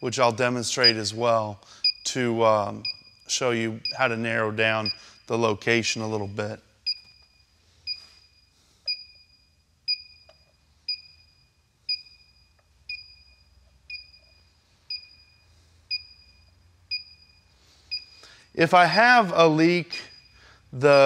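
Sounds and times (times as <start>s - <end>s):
gas detector beeping: 0.8s - 1.2s, 1.8s - 5.4s, 6.8s - 18.5s, 19.9s - 21.0s.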